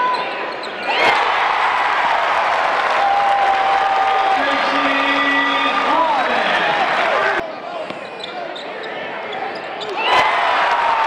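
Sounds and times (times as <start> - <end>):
basketball court noise: 0.0 - 11.0
crowd cheering: 0.8 - 7.4, 9.8 - 11.0.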